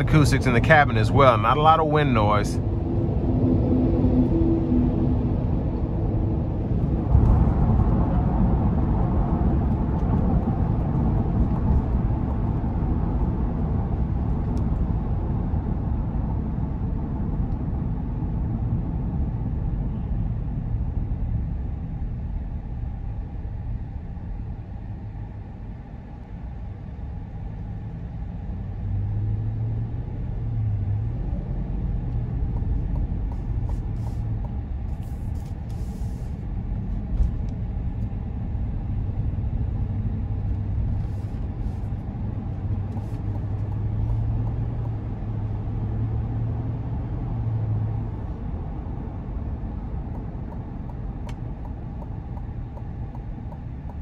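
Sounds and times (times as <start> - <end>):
car cabin road rumble: 0.0 - 54.0
low hum: 0.0 - 54.0.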